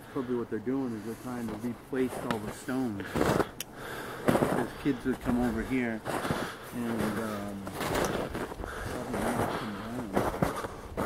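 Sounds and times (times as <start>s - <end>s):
footsteps crunching in snow: 0.2s - 11.0s.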